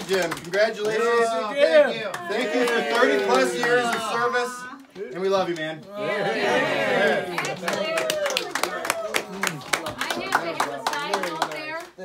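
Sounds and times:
people clapping: 0.0s - 12.0s.

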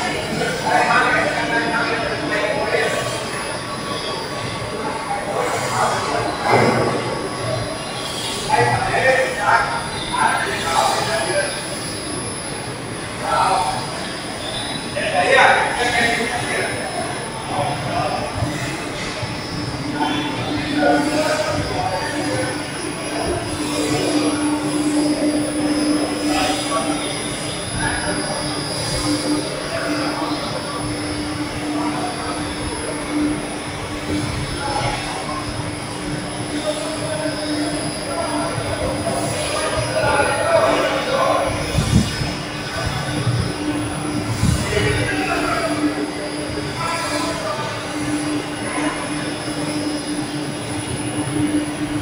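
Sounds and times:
steady hum: 0.0s - 52.0s.

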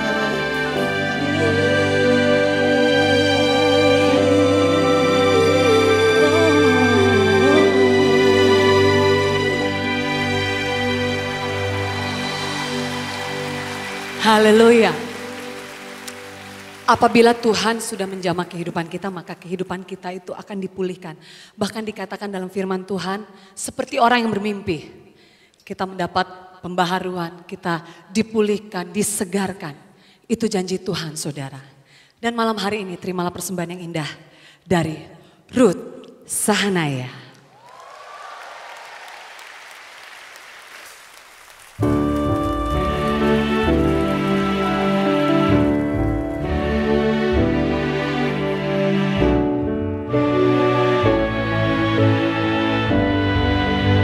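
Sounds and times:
orchestra playing chords: 0.0s - 18.2s, 41.8s - 54.0s
audience applause: 10.4s - 19.2s, 37.4s - 48.6s
string orchestra and band chord: 41.8s - 54.0s.

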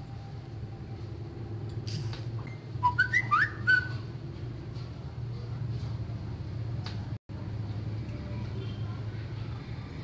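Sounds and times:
high whistled chirps: 2.5s - 4.1s.

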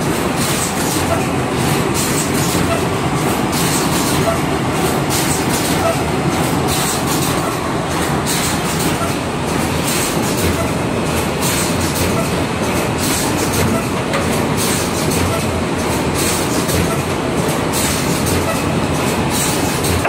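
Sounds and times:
machine mechanical clatter: 0.0s - 20.0s
sharp machine noise bursts: 0.0s - 20.0s.

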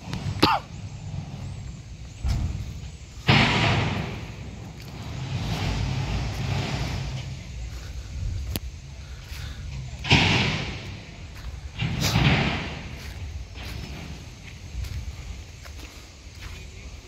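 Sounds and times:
heavy machinery engine rumble: 0.0s - 17.0s
loud hissing rush: 0.0s - 17.0s.

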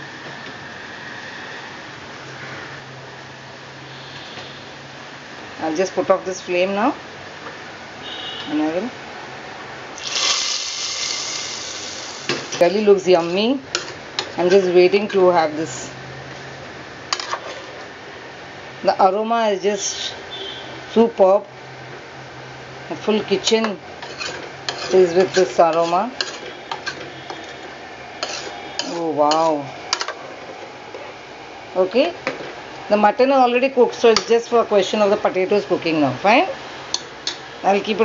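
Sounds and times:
hot ghee sizzling in pot: 10.0s - 14.7s, 24.0s - 30.2s.

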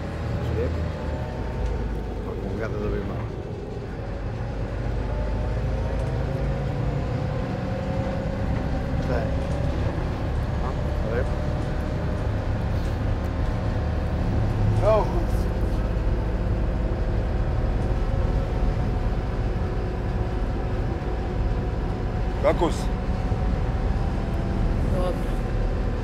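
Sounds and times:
bus engine and road rumble: 0.0s - 26.0s.

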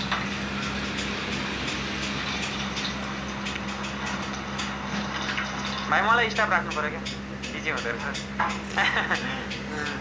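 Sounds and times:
machine hum: 0.0s - 10.0s.

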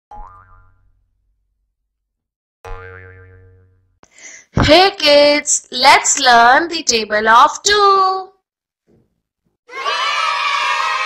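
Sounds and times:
cartoon boing sound effect: 0.1s - 1.0s, 2.7s - 4.0s.

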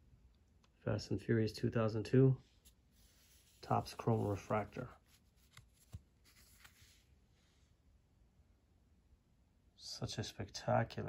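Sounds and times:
plastic card holder rustling: 3.0s - 7.0s.

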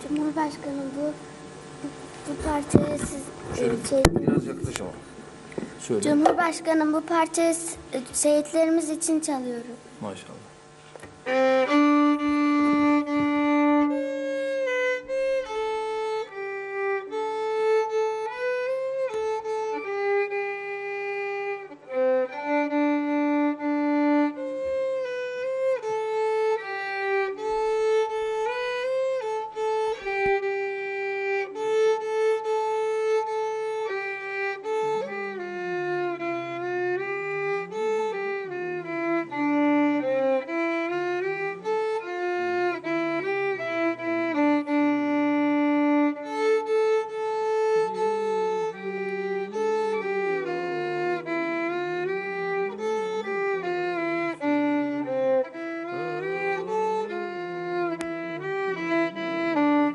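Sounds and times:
solo violin melody: 0.0s - 5.0s, 10.0s - 59.9s.

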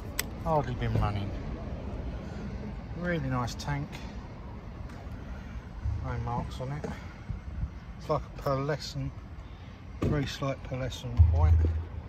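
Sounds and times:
low outdoor rumble: 0.0s - 9.9s, 10.6s - 12.0s.

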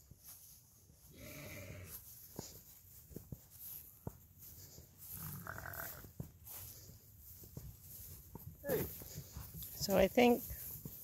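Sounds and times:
ram bleating: 5.1s - 6.1s.

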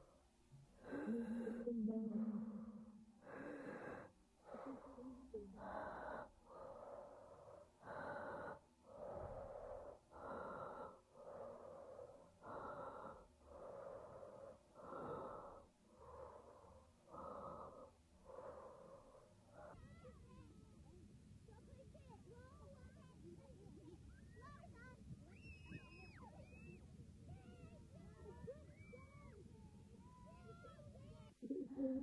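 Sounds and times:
person breathing hard and fast: 0.8s - 20.4s.

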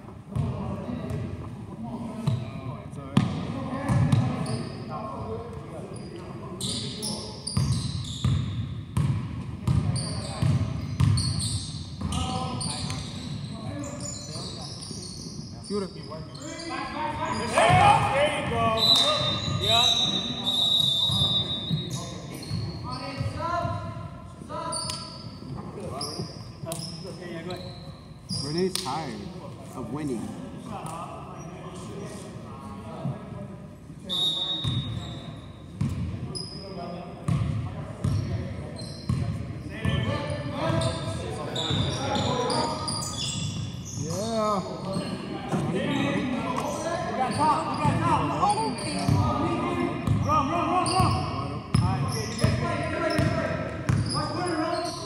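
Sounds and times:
players' voices echoing: 12.0s - 55.0s.

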